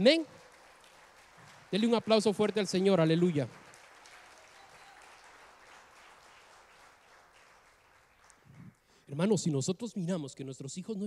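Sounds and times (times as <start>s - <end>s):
faint congregation applause: 0.0s - 9.0s.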